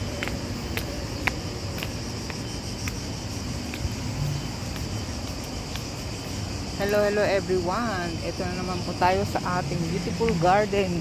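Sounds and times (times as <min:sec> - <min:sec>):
light sharp ticks: 0:00.1 - 0:03.9, 0:04.7 - 0:06.1.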